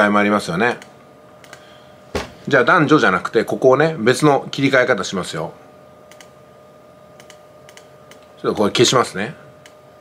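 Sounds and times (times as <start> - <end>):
computer keys or mouse clicks: 7.2 - 8.3.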